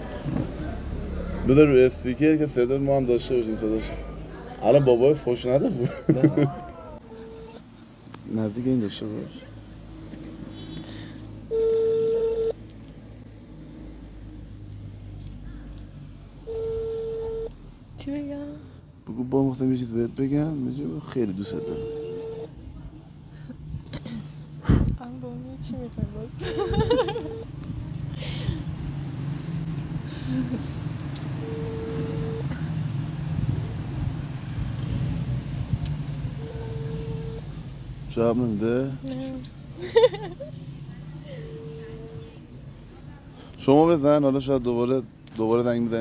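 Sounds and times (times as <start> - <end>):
phone ringback beep: 11.5 - 12.6, 16.5 - 17.5, 21.6 - 22.5, 31.4 - 32.5, 36.4 - 37.4, 41.4 - 42.3.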